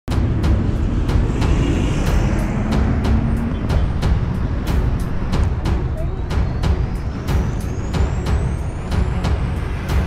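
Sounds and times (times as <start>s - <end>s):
cars and bus passing: 0.1s - 10.0s
music with steady beat: 0.1s - 10.0s.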